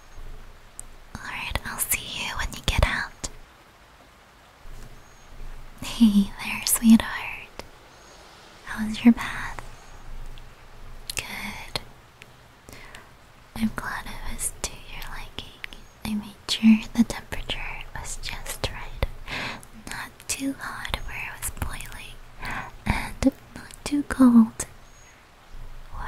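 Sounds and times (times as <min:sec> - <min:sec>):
woman whispering: 0:01.2 - 0:03.4, 0:05.8 - 0:07.7, 0:08.6 - 0:09.8, 0:11.0 - 0:11.9, 0:13.6 - 0:19.2, 0:19.8 - 0:24.7.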